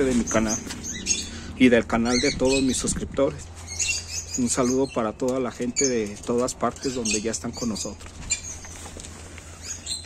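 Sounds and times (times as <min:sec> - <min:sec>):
bird chirps: 0:00.0 - 0:10.0.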